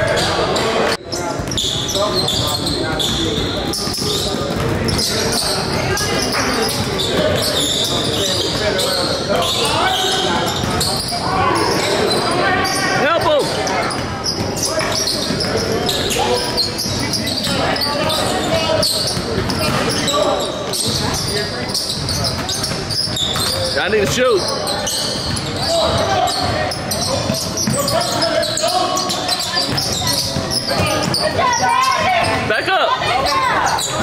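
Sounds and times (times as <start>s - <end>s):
voices of players and spectators: 0.0s - 34.0s
basketball bouncing on wooden floor: 2.5s - 7.5s, 19.0s - 20.0s.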